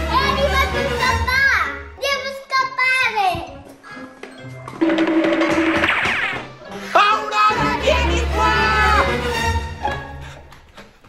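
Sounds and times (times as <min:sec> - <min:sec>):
little girl talking: 0:00.0 - 0:03.6.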